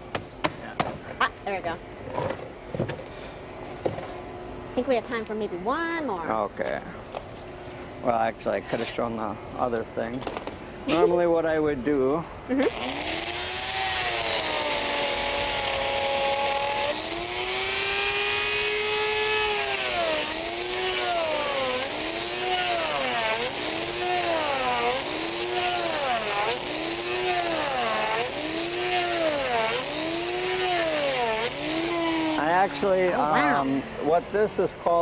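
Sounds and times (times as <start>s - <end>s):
die grinder cutting ice: 12.5s - 34.2s.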